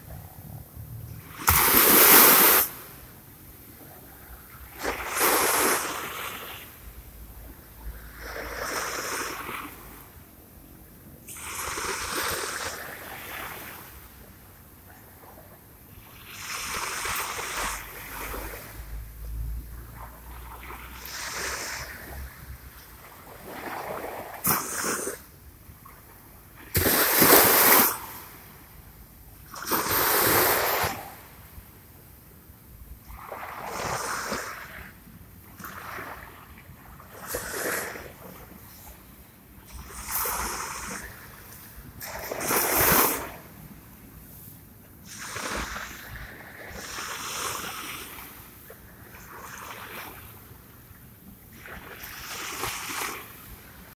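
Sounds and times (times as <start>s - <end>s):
small waves lapping at shore: 0.0s - 53.9s.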